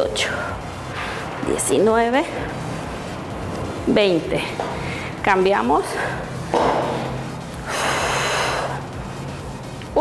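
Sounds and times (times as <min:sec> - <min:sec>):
background music: 0:00.0 - 0:10.0
woman breathing hard: 0:04.6 - 0:05.2, 0:07.5 - 0:09.0.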